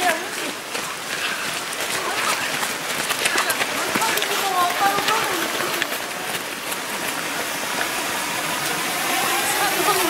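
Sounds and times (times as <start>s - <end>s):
stream rushing: 0.0s - 10.0s.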